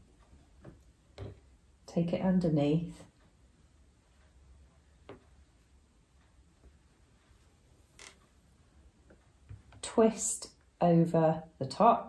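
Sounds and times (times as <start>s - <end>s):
scratchy yarn handling: 3.7s - 9.9s.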